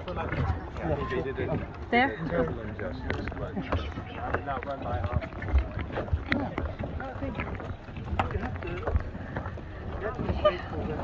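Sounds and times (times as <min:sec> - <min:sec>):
faint voices talking: 0:00.0 - 0:11.0
footsteps on plastic dock: 0:00.0 - 0:11.0.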